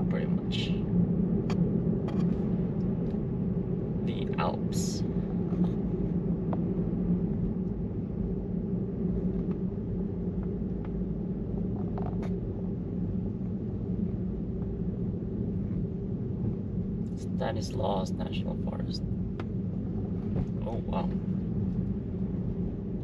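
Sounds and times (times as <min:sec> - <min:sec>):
road and tyre noise in car: 0:00.0 - 0:23.0.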